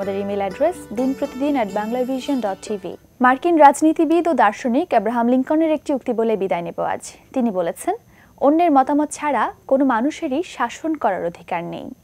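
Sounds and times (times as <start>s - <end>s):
woman talking: 0.0s - 12.0s.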